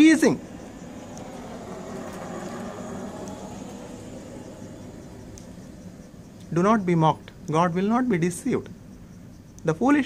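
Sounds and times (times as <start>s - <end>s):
vehicle passing by: 0.0s - 7.2s.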